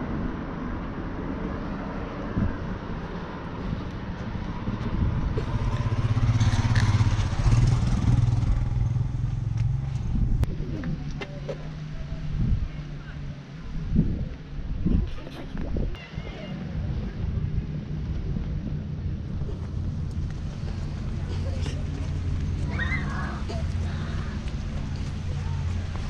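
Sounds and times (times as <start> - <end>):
motorcycle engine passing: 4.5 - 10.4.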